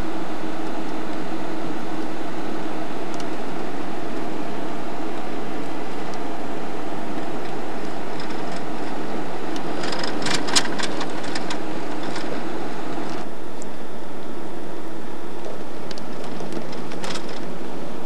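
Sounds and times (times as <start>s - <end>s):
car road and engine noise: 0.0s - 18.0s
rattling clicks: 7.4s - 13.3s, 15.4s - 17.5s.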